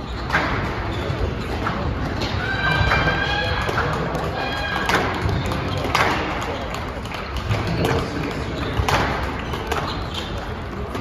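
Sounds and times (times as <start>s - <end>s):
court shoes squeaking: 0.0s - 11.0s
squash ball hits: 0.2s - 11.0s.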